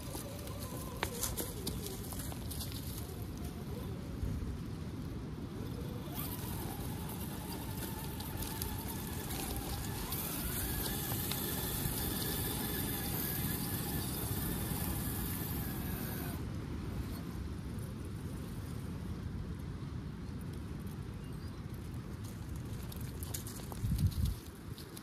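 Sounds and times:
electric motor and gears whining: 5.6s - 16.4s.

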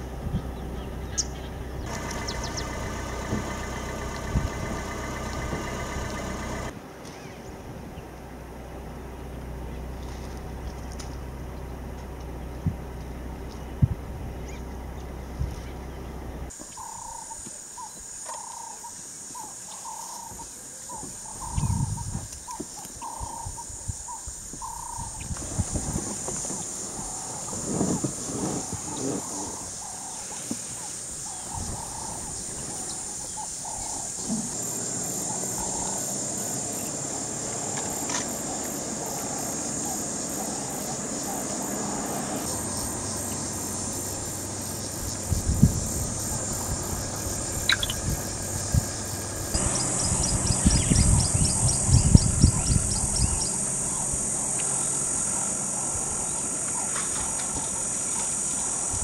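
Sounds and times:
low steady rumble: 0.0s - 16.5s, 42.4s - 58.0s
bird calling: 0.3s - 7.5s, 16.6s - 25.3s, 26.4s - 37.0s, 37.6s - 58.8s
high insect drone: 1.0s - 6.8s, 16.5s - 59.0s.

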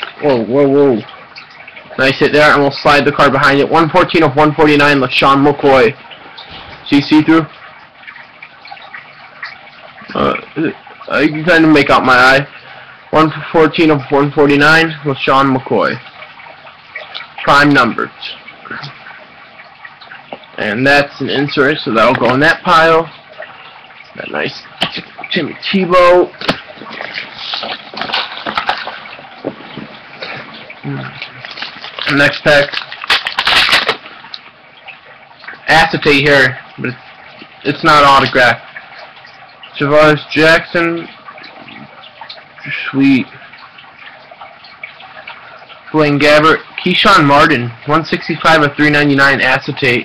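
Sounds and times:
card rustling: 26.4s - 30.1s, 31.3s - 34.1s.

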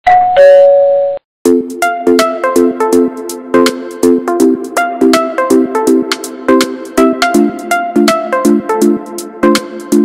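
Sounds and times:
two-note doorbell chime: 0.1s - 1.2s
electronic music with a beat: 1.5s - 10.0s.

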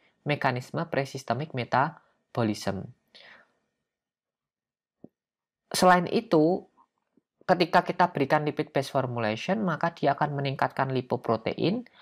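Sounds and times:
faint breath: 3.1s - 3.7s.

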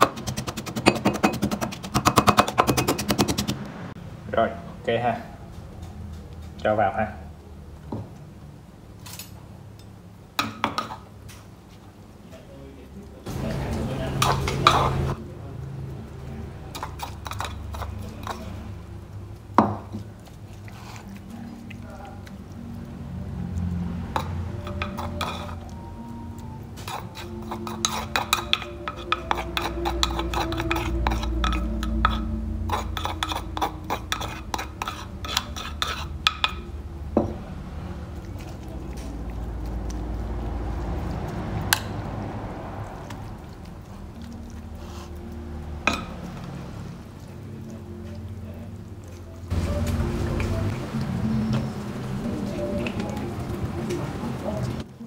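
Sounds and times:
utensil scraping a mortar: 0.0s - 3.6s, 16.7s - 18.6s, 24.2s - 25.7s, 26.8s - 36.7s.

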